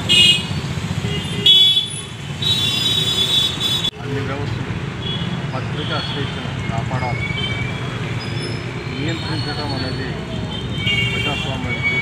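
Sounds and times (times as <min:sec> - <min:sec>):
vehicle horns tooting: 0:00.0 - 0:03.9, 0:05.0 - 0:12.0
street traffic: 0:00.0 - 0:12.0
voices: 0:05.5 - 0:07.5, 0:08.8 - 0:12.0.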